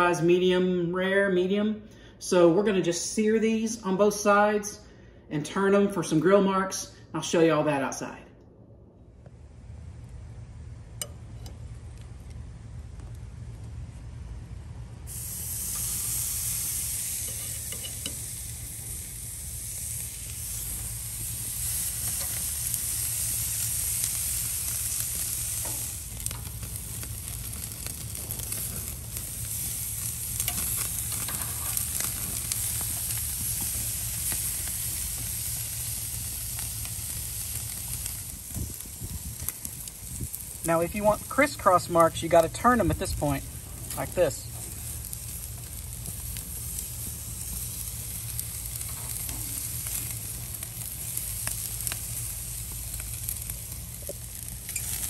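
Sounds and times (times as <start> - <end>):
low steady rumble: 0.0 - 55.0
steaks sizzling on grill: 15.0 - 55.0.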